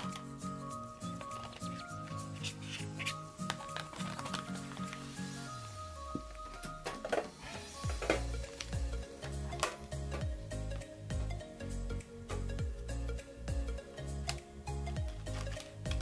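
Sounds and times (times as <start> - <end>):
background music with bass line: 0.0 - 16.0.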